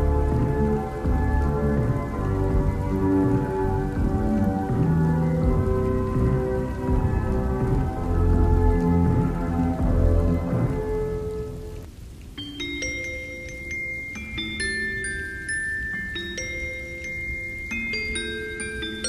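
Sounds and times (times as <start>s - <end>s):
slow song with deep bass: 0.0s - 11.9s
steady rain: 0.0s - 19.0s.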